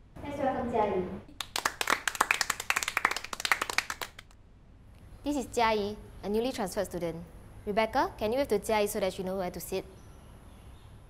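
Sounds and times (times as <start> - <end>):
people clapping hands: 1.3 - 4.4.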